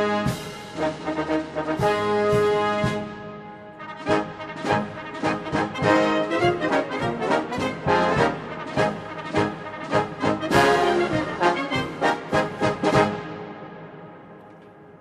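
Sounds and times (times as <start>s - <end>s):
military brass band playing: 0.0s - 14.4s.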